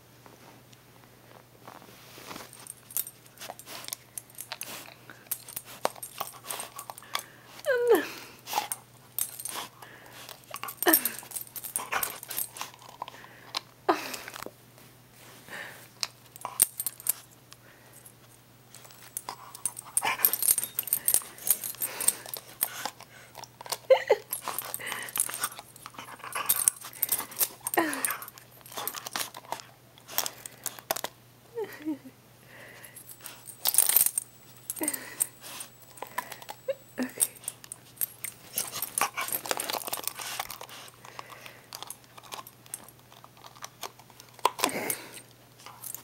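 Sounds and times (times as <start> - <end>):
dog collar tags jingling: 2.4 - 7.4, 8.5 - 13.1, 16.2 - 17.3, 18.0 - 31.1, 32.8 - 46.0
dog whimpering: 7.6 - 8.2.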